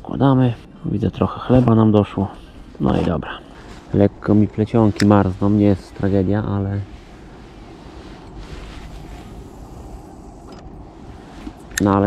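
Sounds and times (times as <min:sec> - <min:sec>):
outdoor low rumble: 0:00.0 - 0:12.0.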